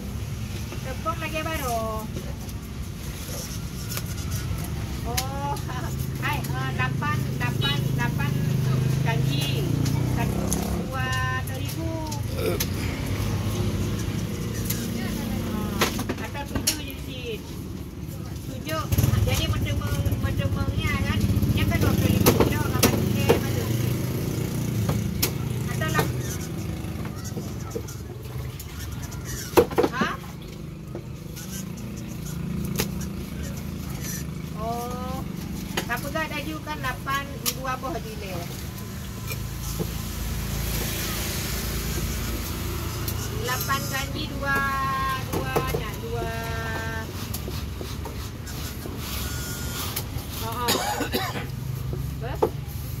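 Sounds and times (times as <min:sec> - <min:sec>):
vehicle engine rumbling: 0:00.0 - 0:53.0.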